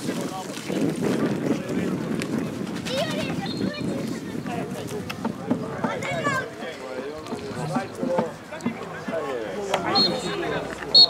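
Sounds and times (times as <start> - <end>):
outdoor background noise: 0.0 - 11.0
people talking indistinctly: 0.0 - 11.0.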